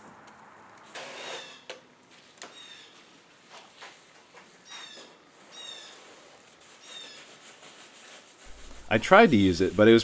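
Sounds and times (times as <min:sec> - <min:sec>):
gloved hands squeezing wet mix: 0:05.3 - 0:10.0
rough crunching rustle: 0:08.4 - 0:10.0.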